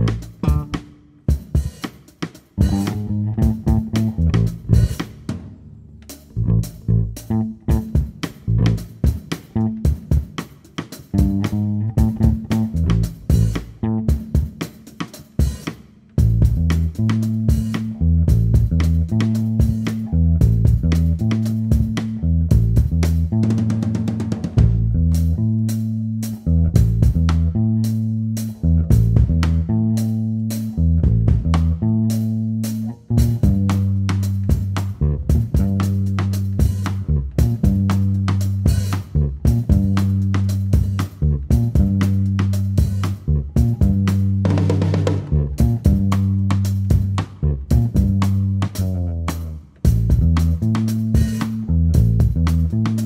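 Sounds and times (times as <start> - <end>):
electric bass guitar: 0.0 - 1.7, 2.6 - 10.3, 11.0 - 14.7, 15.4 - 53.0
drum kit beat: 0.0 - 53.0.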